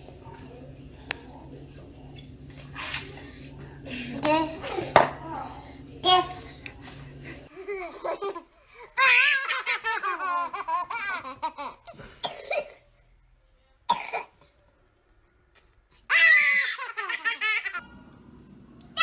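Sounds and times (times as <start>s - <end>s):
toddlers shrieking and laughing: 16.1s - 17.0s.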